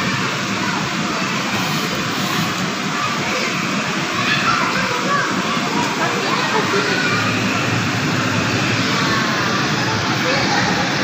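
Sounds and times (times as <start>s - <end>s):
faint children's voices: 0.0s - 11.0s
rushing din of indoor playground: 0.0s - 11.0s.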